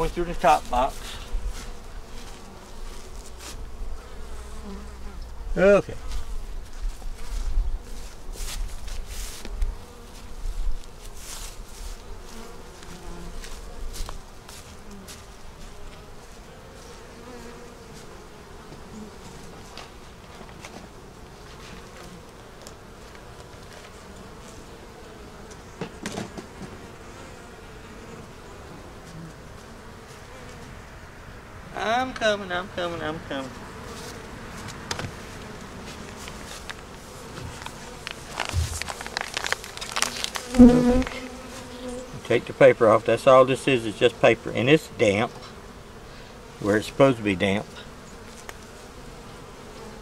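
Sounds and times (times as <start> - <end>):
bees buzzing: 0.0 - 50.0.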